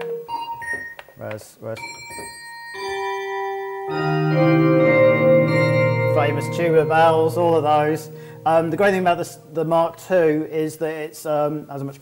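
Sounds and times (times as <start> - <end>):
synthesizer bell notes: 1.8 - 9.9.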